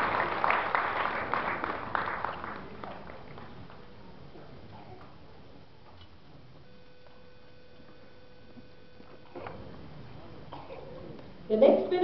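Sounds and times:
faint multi-tone hum: 0.0s - 12.0s.

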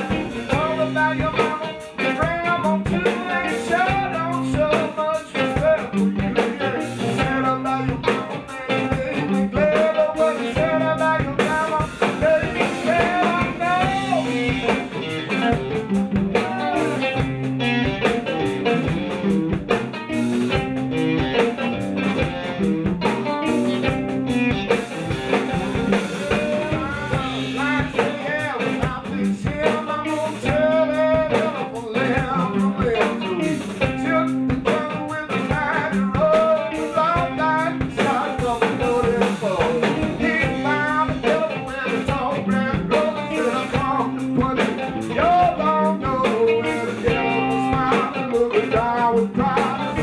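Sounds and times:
blues band playing: 0.0s - 50.0s
man singing: 0.0s - 50.0s.

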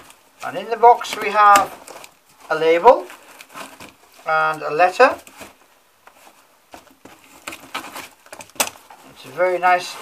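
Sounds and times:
paper and cardboard rustling: 0.0s - 10.0s.

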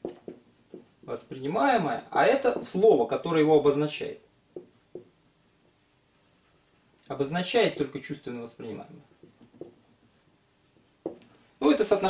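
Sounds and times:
marker scratching on whiteboard: 0.0s - 1.4s, 2.4s - 2.9s, 4.3s - 7.0s, 8.7s - 12.0s.

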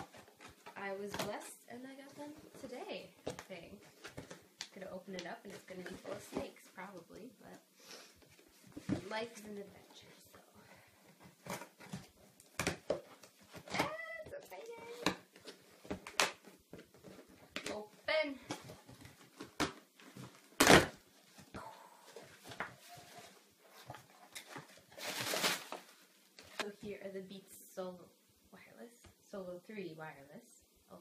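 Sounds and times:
cardboard ripping: 19.2s - 21.0s, 24.3s - 26.7s.

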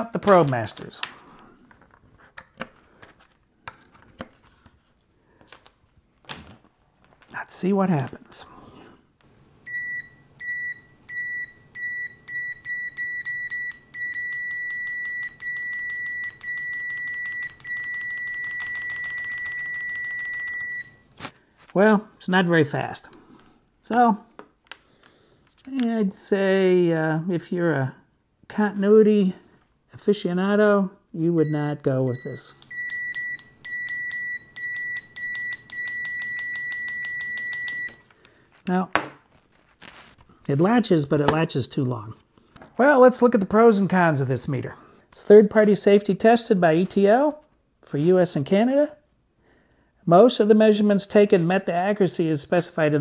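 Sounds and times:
multimeter continuity beeps: 9.7s - 21.0s, 31.4s - 38.1s.

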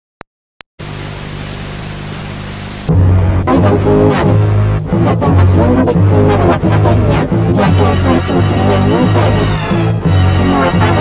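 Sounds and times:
low steady hum: 0.8s - 11.0s
loud music: 2.9s - 11.0s.

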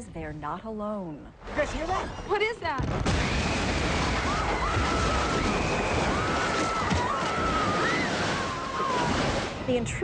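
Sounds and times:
crashing water and splashing: 2.8s - 10.0s
high wavering screams: 3.3s - 9.3s.

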